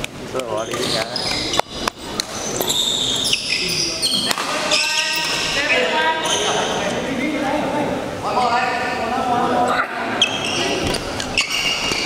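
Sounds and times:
shoes squeaking on court floor: 0:00.5 - 0:06.9, 0:10.2 - 0:12.0.

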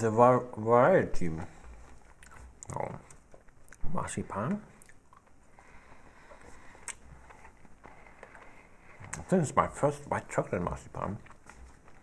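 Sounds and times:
faint chewing: 0:01.4 - 0:12.0.

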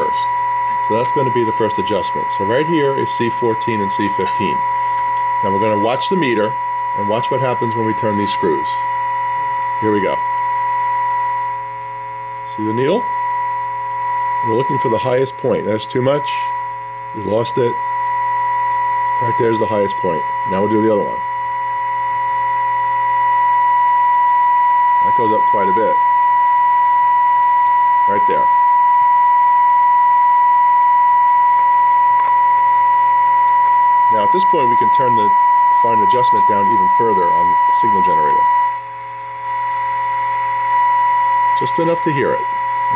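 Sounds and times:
low steady hum: 0:00.0 - 0:42.9
test tone from radio speaker: 0:00.0 - 0:42.9.

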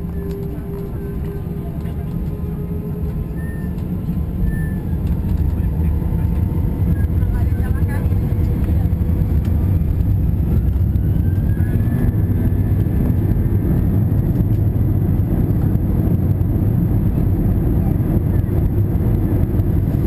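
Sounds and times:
jet engine rumble in cabin: 0:00.0 - 0:20.0.

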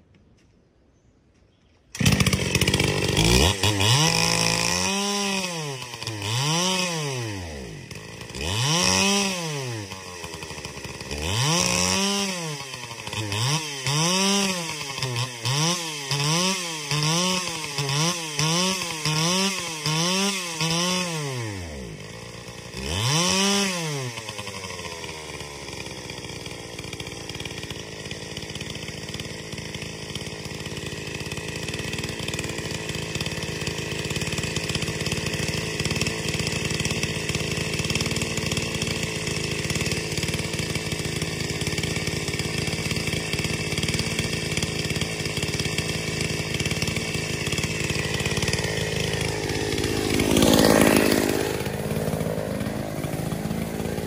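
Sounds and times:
chainsaw revving and idling: 0:01.9 - 0:54.0.

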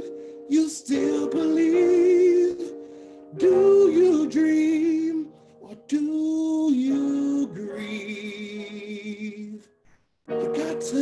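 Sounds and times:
man singing held notes: 0:00.0 - 0:09.7, 0:10.3 - 0:11.0.

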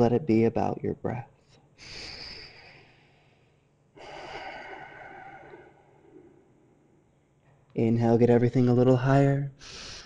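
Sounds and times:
man breathing deeply: 0:01.8 - 0:07.0, 0:09.6 - 0:10.0.

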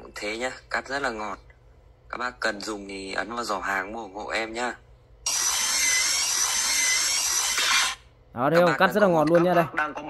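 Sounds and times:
drill cutting metal sheet: 0:05.3 - 0:08.0.

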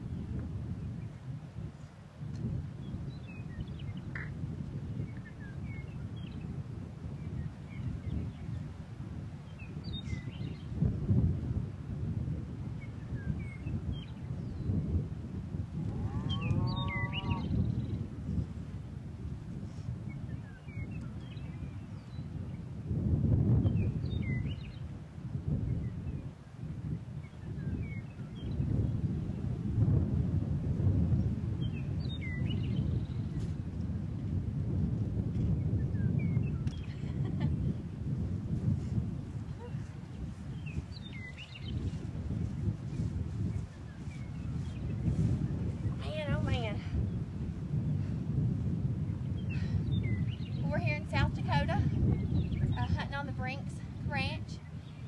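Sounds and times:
wind rumbling on microphone: 0:00.0 - 0:55.0
longer bird call: 0:16.0 - 0:17.6
songbird chirps: 0:40.3 - 0:46.7.

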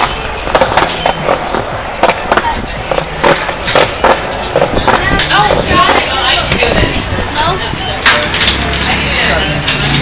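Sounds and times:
skateboard clacks: 0:00.0 - 0:06.8
skateboard wheels rolling on pavement: 0:00.0 - 0:10.0.

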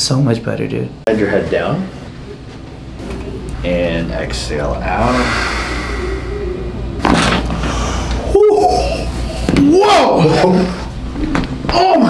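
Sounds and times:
man humming exhale: 0:04.9 - 0:09.5.

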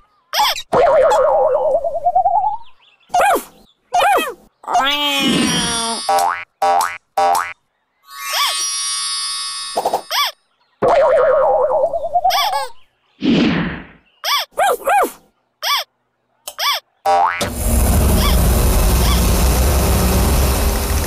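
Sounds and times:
springy cartoon boings: 0:05.2 - 0:07.6, 0:08.2 - 0:12.4.

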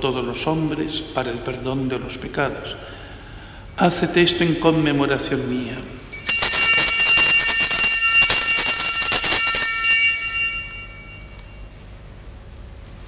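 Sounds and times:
altar bells shaken and ringing: 0:05.6 - 0:11.6.

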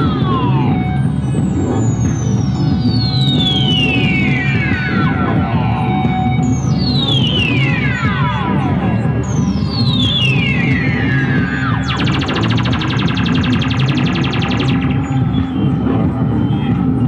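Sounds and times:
synth tone sweeping downward: 0:00.0 - 0:16.4
rapid buzzing pulse: 0:00.0 - 0:16.5
low drone: 0:00.0 - 0:16.6.

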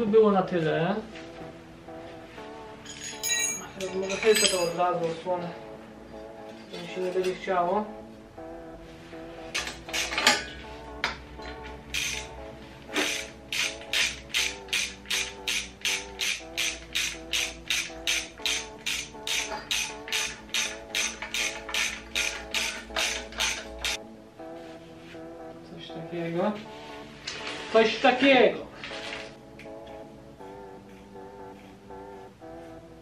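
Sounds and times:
background music: 0:00.0 - 0:33.0
ratchet wrench ratcheting: 0:09.6 - 0:10.4, 0:11.9 - 0:12.3, 0:12.9 - 0:24.0.

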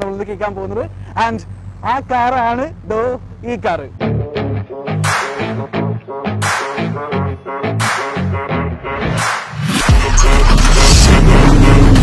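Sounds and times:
man talking: 0:00.0 - 0:04.0.

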